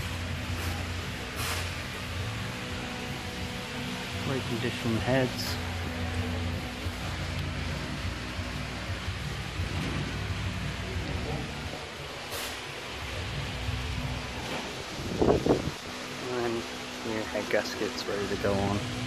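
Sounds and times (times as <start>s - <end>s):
low workshop hum: 0.0s - 19.0s.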